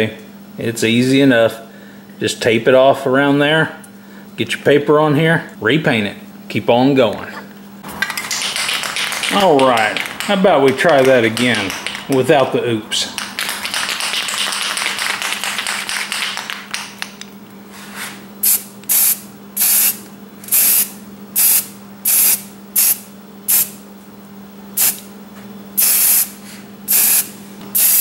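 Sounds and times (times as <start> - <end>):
spray paint can bursts: 18.4 - 23.7, 24.8 - 25.0, 25.8 - 26.3, 26.9 - 28.0.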